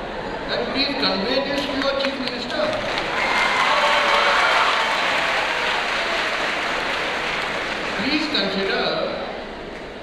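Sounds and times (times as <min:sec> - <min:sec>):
audience applauding: 0:01.6 - 0:08.8.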